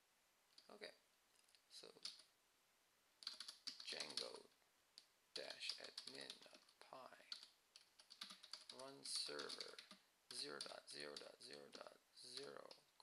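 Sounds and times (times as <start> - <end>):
computer keyboard typing: 1.8 - 2.3, 3.2 - 4.5, 5.4 - 13.0.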